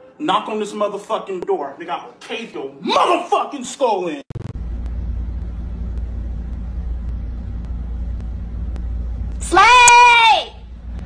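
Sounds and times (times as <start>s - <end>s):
steady low rumble: 4.3s - 11.0s.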